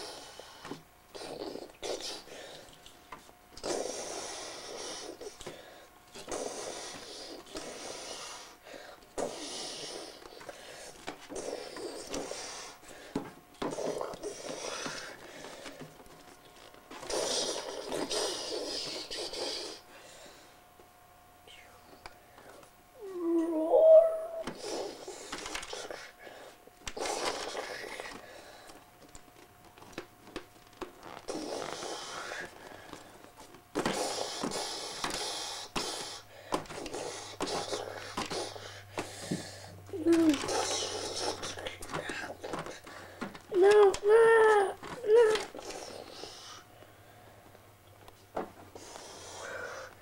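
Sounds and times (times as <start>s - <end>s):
child growling: 23.0s - 24.7s, 39.9s - 41.8s, 43.5s - 45.9s
child whispering monster noises: 23.0s - 25.0s, 39.9s - 42.7s, 43.5s - 46.0s.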